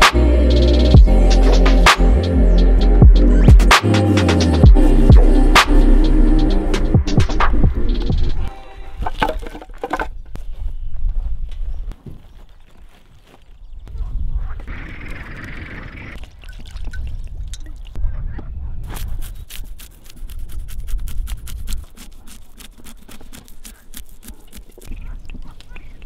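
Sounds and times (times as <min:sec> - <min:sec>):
crackles and clicks: 0:13.9 - 0:18.0, 0:18.8 - 0:26.0
knife scraping fish scales: 0:18.9 - 0:25.0.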